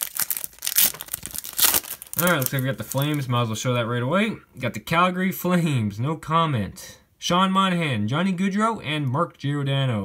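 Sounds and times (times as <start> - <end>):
wrapper tearing and crinkling: 0.0 - 3.3.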